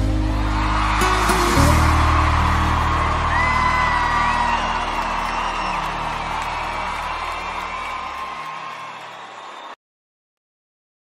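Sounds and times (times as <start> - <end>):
crowd cheering and whooping: 0.0 - 9.8.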